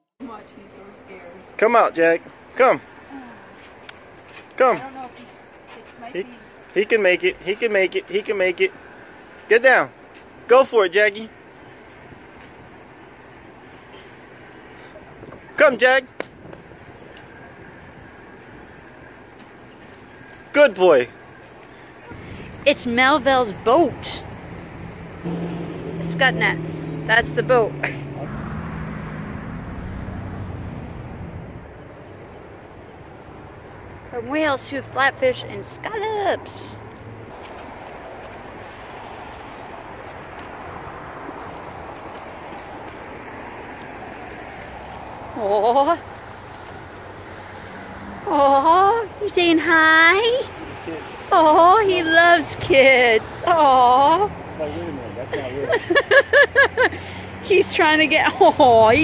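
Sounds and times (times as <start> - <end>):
wind: 0.0 - 59.0
distant traffic: 0.2 - 59.0
outdoor background hum: 0.2 - 59.0.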